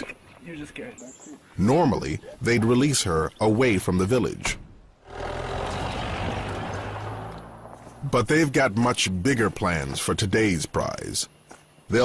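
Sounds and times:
vehicle engine running: 0:05.0 - 0:08.6.

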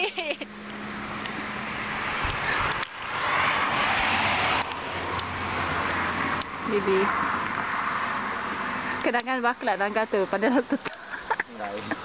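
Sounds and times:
vehicle passing on road: 0:00.0 - 0:12.0.

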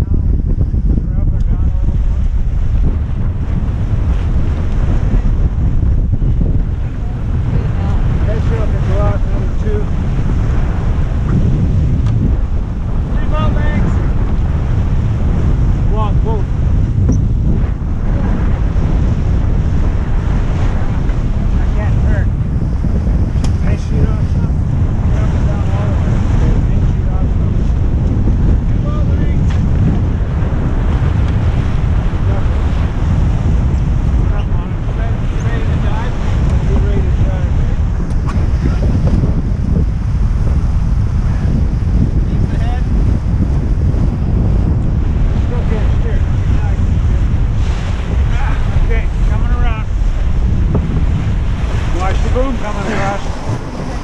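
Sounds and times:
water rushing along boat hull: 0:00.0 - 0:54.0
wind buffeting microphone: 0:00.0 - 0:54.0.

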